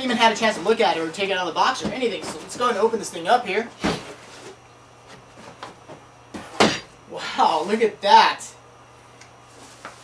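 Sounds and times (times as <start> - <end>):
cardboard box thud and scrape: 3.8 - 4.5.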